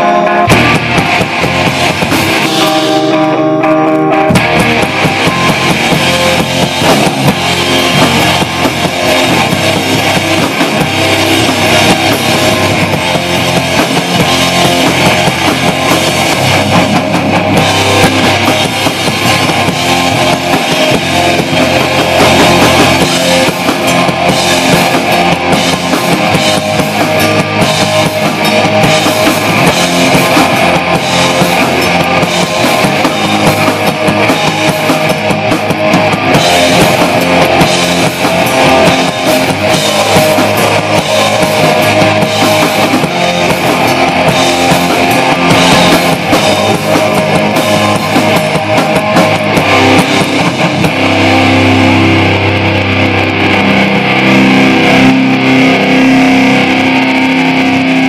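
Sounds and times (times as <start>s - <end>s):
drum kit: 0.0s - 58.0s
electric guitars: 0.0s - 58.0s.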